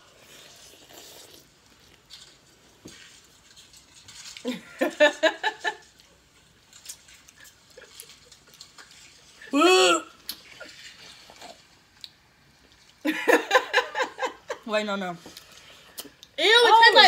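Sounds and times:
mouth sounds of eating: 0.0s - 2.0s
woman laughing: 4.5s - 5.8s, 13.1s - 14.7s.

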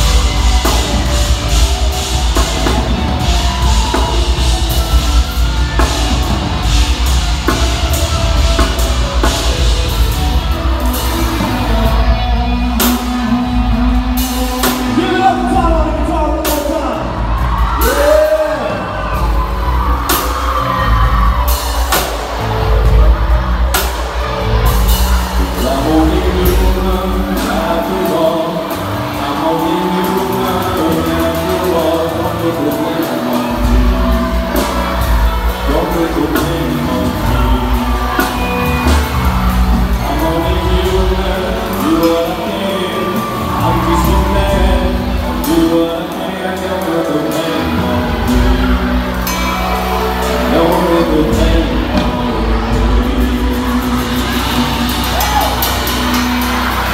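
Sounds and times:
bass: 0.0s - 56.9s
live band playing: 0.0s - 56.9s.

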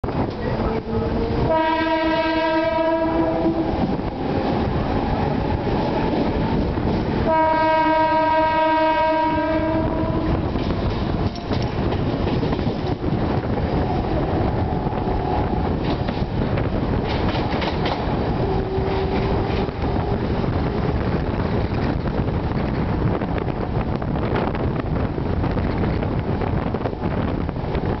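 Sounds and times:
train horn blasts: 1.1s - 4.0s, 7.2s - 11.3s, 18.3s - 20.2s
wheels running on rails: 3.1s - 7.3s, 9.8s - 28.0s.

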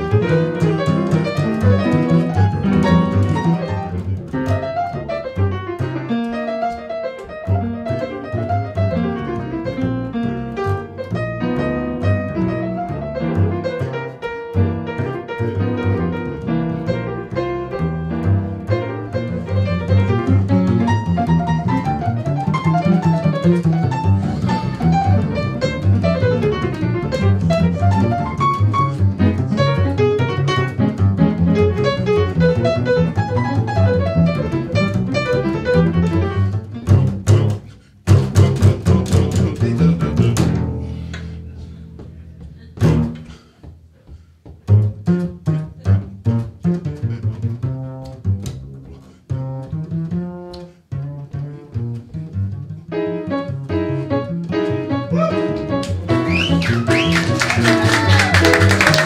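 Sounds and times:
double bass plucked: 0.0s - 59.0s.

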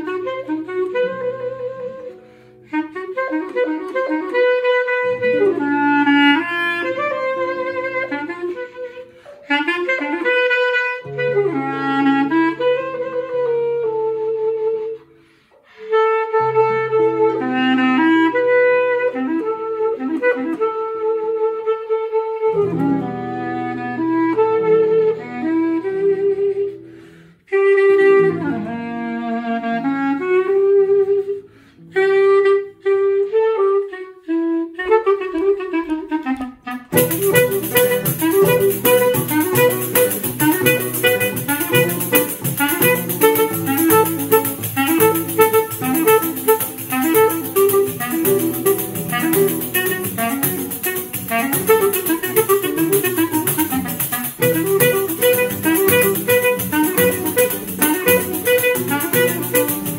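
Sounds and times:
clarinet melody: 0.0s - 59.9s
guitar bass lines: 36.9s - 59.9s
guitar strumming: 36.9s - 59.9s.

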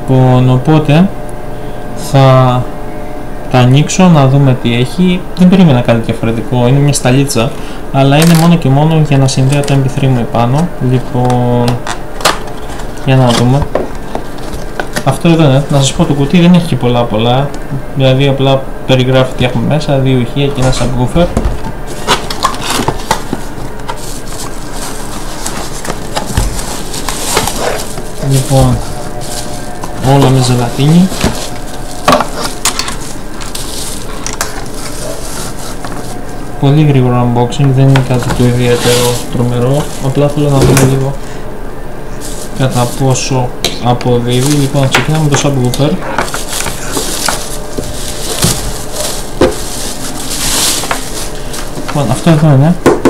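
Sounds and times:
steady background hiss: 0.0s - 53.0s
bubble wrap crinkling: 8.1s - 16.7s, 20.5s - 41.3s, 42.1s - 52.8s.

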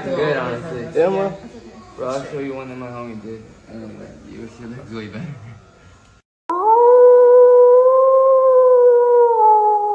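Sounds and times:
wolf howling: 6.5s - 9.9s.

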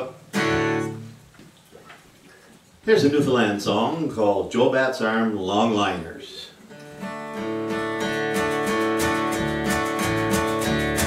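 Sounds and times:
guitar chord strummed: 0.0s - 1.1s, 7.0s - 11.0s.

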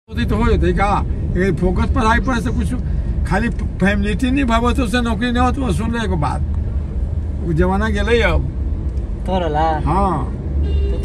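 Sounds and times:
car engine and road rumble: 0.1s - 11.0s
people talking in a car: 0.1s - 11.0s.

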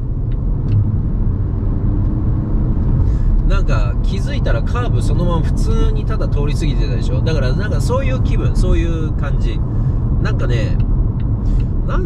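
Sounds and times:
car road noise rumble: 0.0s - 12.0s.

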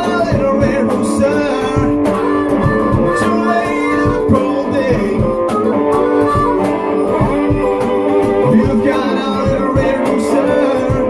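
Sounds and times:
harmonica: 0.0s - 11.0s
steady beat: 0.0s - 11.0s
strummed acoustic guitar: 0.0s - 11.0s.

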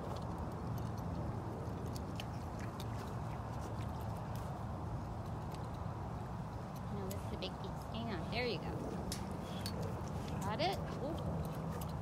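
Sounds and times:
tiger chewing meat: 0.0s - 7.4s, 8.8s - 12.0s.

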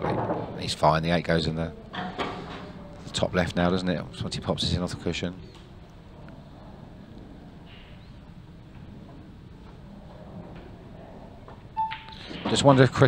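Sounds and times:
short electronic beep: 11.8s - 12.1s.

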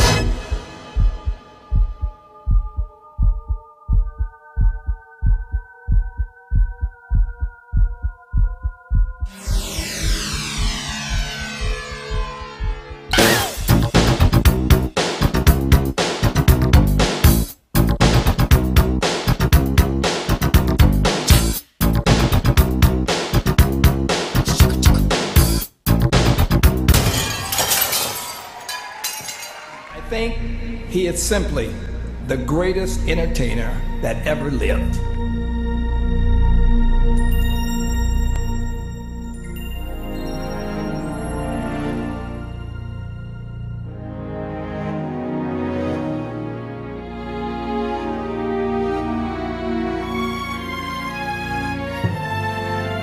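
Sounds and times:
music: 0.0s - 53.0s
heartbeat thumps: 0.3s - 9.3s, 10.6s - 13.0s
held synth chord: 9.3s - 13.7s, 35.0s - 53.0s
glass shattering: 26.9s - 30.0s
tinkling glass shards: 27.2s - 29.8s.

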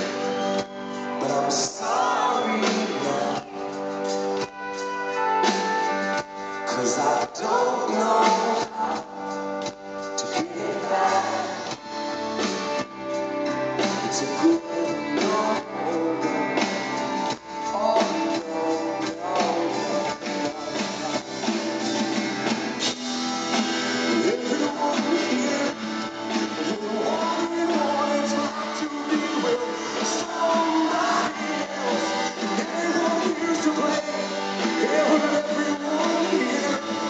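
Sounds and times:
man singing into microphone: 0.0s - 3.9s, 6.6s - 9.5s, 10.1s - 11.8s, 14.0s - 21.3s, 24.0s - 37.0s
electric guitar: 0.0s - 37.0s
live rock band: 0.0s - 37.0s.

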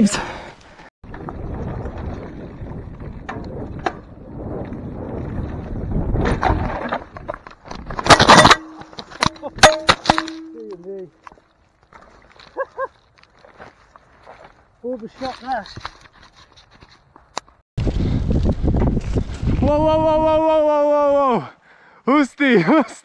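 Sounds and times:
bike tyres rolling on dirt: 0.5s - 9.5s, 10.1s - 21.2s
bike crash impact: 6.1s - 10.7s.

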